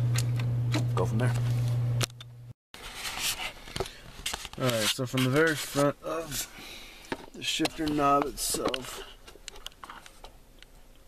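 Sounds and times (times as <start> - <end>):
rustling handling noise: 2.8 - 10.4.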